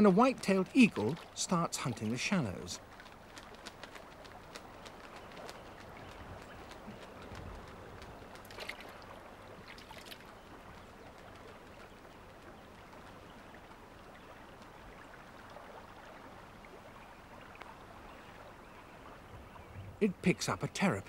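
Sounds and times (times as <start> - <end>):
low steady water wash: 0.0 - 21.0.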